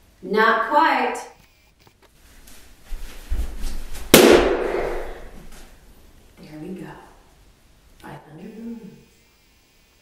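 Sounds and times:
balloon bursting: 4.1 - 5.5
low thuds: 4.1 - 5.5.

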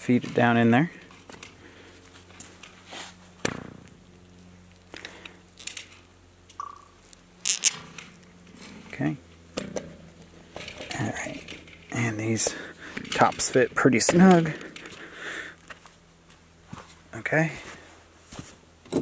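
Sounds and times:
steady low hum: 0.0 - 19.0.

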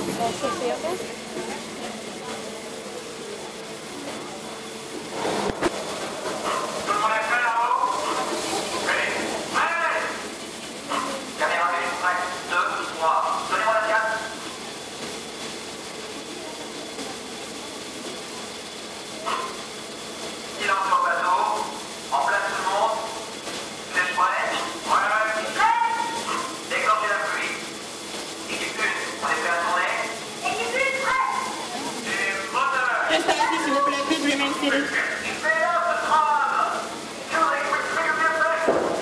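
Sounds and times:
tram running hiss: 0.0 - 39.0.

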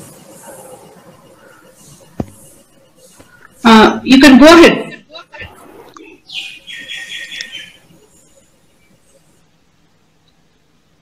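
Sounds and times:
bird chirping and trilling: 6.0 - 9.2.

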